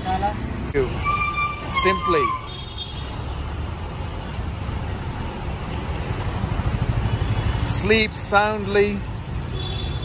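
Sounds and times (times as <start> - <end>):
traffic engine rumble: 0.0 - 10.0.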